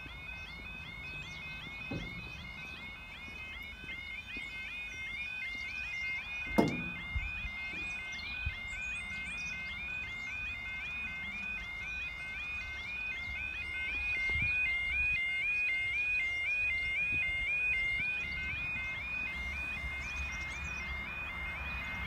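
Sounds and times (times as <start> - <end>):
level crossing alarm warbling: 0.0 - 22.0.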